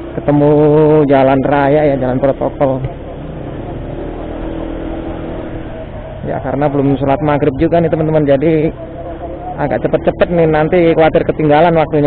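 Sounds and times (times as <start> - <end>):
motor scooter engine cruising: 0.0 - 12.0
road and wind noise: 0.0 - 12.0.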